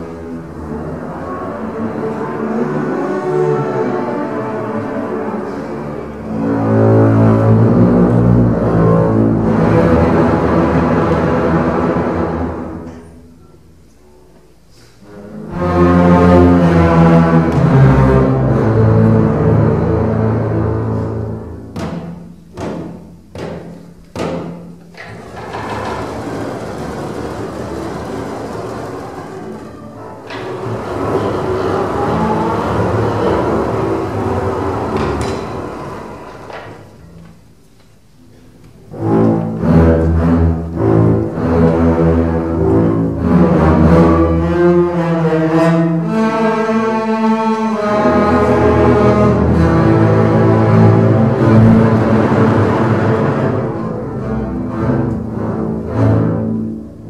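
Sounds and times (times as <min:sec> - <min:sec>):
double bass ensemble bowed chords: 0:00.0 - 0:57.0.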